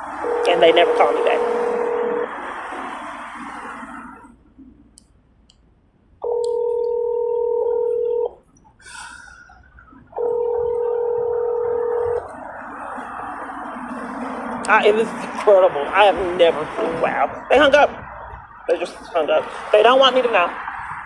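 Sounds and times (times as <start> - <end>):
telephone beep tone: 0.2 - 2.3, 6.2 - 8.4, 9.5 - 12.2.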